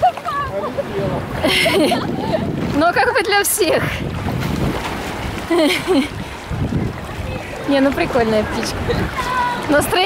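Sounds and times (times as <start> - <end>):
water sloshing and splashing: 0.0 - 10.0
wind buffeting microphone: 0.0 - 10.0.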